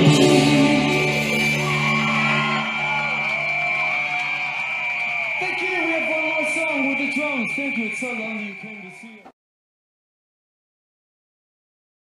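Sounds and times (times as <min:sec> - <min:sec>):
audience cheering and whooping: 0:00.0 - 0:09.2.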